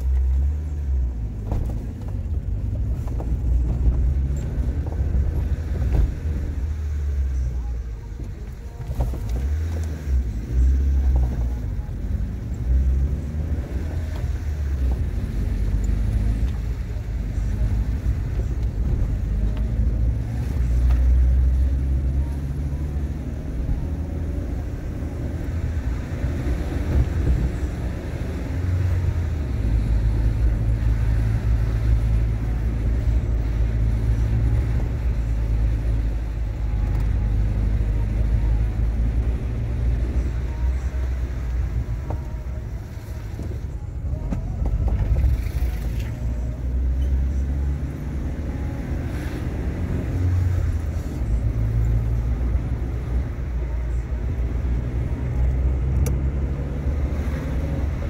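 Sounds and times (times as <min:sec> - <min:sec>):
car engine rumble: 0:00.0 - 0:58.0
road noise: 0:00.0 - 0:58.0.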